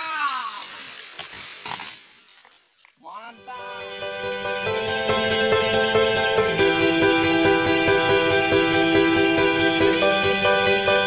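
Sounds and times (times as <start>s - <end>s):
palm frond crashing onto fronds: 0.0s - 3.0s.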